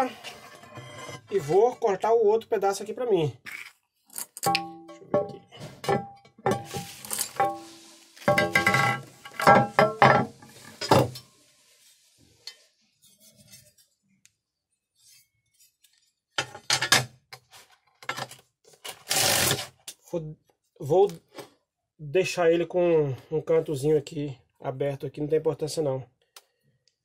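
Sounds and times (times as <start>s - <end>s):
metal scraping across glass: 0.0s - 1.8s, 6.5s - 11.2s.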